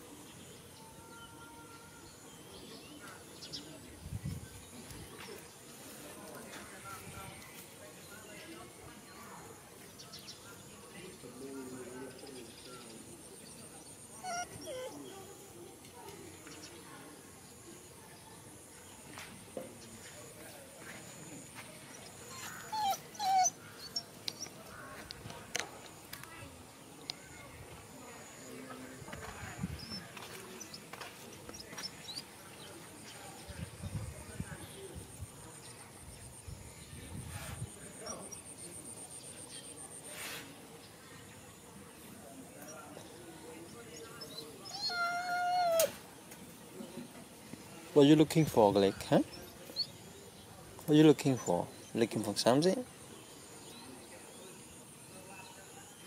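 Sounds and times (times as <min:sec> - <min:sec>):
dog whining: 0:14.1 - 0:15.2, 0:22.1 - 0:24.1, 0:44.6 - 0:46.0.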